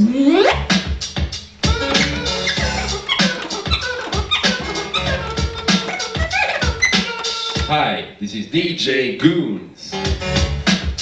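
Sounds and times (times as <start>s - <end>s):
vinyl record scratching: 0.0s - 7.9s
drum beat: 0.7s - 7.8s, 10.1s - 11.0s.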